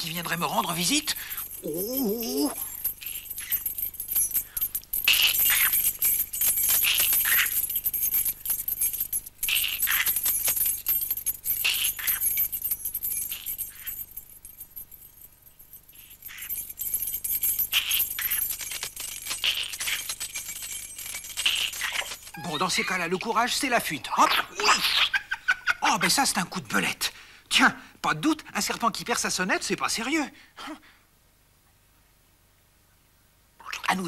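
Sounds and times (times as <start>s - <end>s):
small bell jingling: 0.0s - 23.5s.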